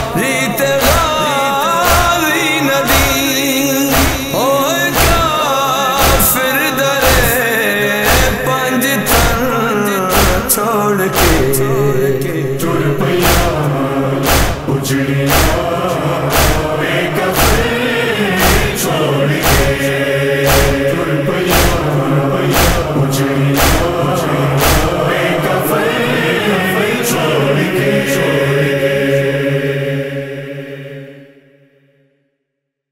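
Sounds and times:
heavy steady beat: 0.0 - 7.5, 8.1 - 25.6
men singing a lament with chorus: 0.0 - 31.5.

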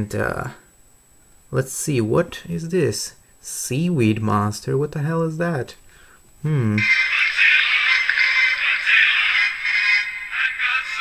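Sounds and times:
cartoon theme music on small speaker: 6.8 - 11.0.

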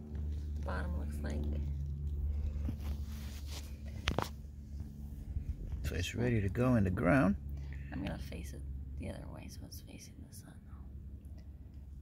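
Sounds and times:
low steady rumble: 0.0 - 12.0
sharp rustle: 2.4 - 5.1.

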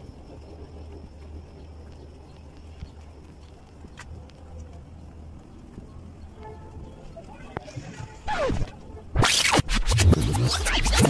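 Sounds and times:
faint clicks: 0.0 - 7.7
steady low rumble: 0.0 - 11.0.

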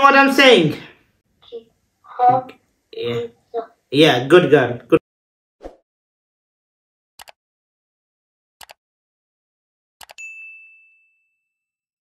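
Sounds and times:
high bell ding: 10.2 - 11.8.

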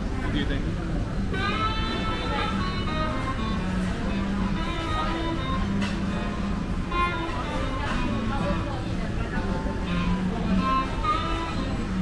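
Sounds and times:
guitar background music: 1.4 - 12.0.

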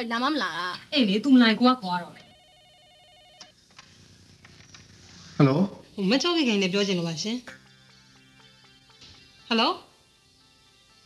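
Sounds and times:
telephone ringing: 2.1 - 3.6.

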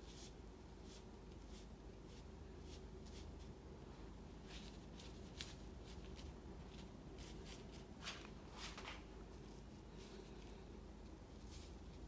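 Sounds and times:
ink brush swishing on paper: 0.0 - 3.4, 4.4 - 10.5, 11.3 - 12.0
low room hum: 0.0 - 12.0.

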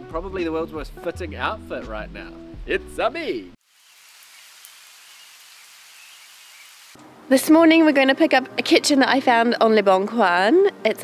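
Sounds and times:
rain falling: 3.6 - 7.0.

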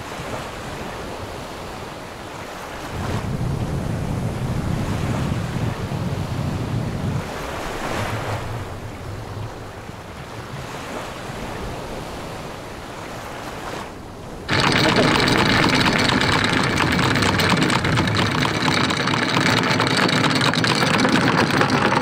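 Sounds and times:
small waves: 0.0 - 22.0
wind: 0.0 - 22.0
anchor chain rattling: 14.5 - 22.0.

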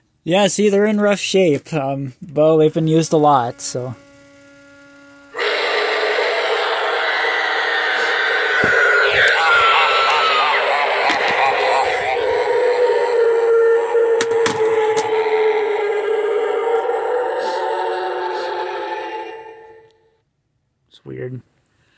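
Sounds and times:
zombie voice: 5.4 - 19.8
spooky music: 5.4 - 20.0.

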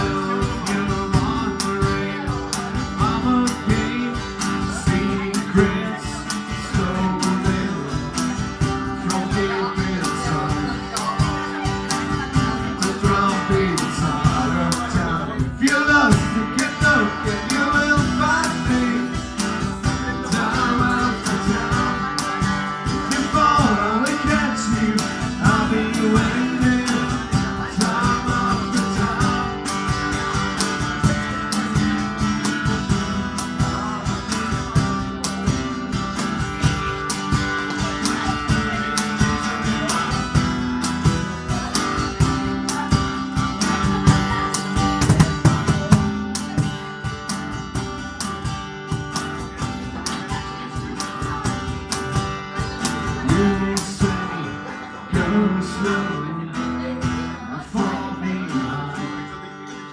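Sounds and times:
steady drum beat: 0.0 - 59.1
lead guitar: 0.0 - 59.9
strummed chords: 0.0 - 59.9.

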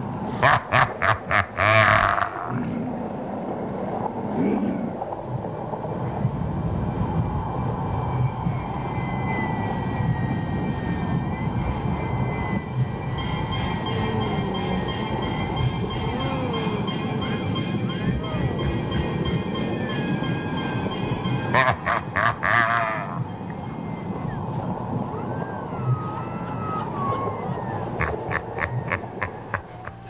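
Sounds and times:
high whine: 4.9 - 30.0
steady high tones: 7.2 - 30.0.

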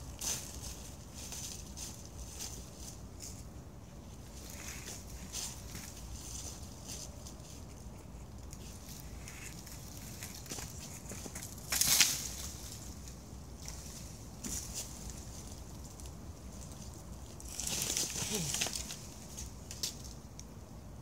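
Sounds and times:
dry wood and leaves rustling: 0.0 - 20.7.

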